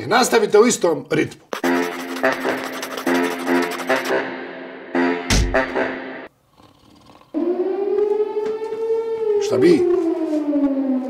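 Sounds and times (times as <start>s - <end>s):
music: 1.6s - 6.3s
loud siren wail: 7.4s - 11.0s.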